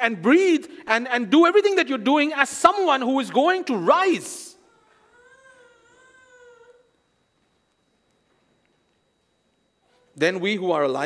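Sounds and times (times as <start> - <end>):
faint wavering cry: 4.6 - 7.2.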